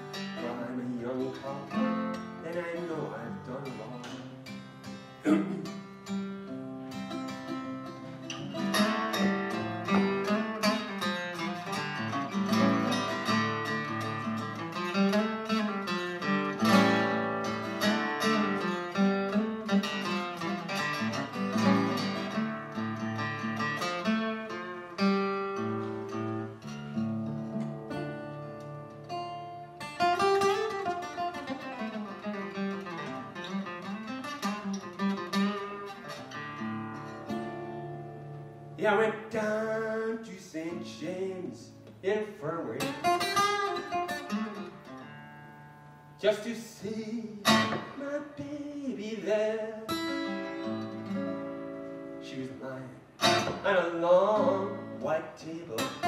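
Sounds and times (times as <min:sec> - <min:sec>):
acoustic guitar playing: 0:00.0 - 0:56.0.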